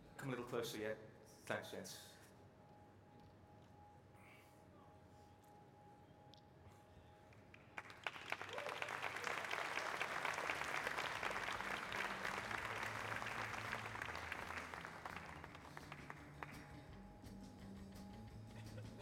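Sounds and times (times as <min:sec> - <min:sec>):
audience applause: 0:07.8 - 0:16.8.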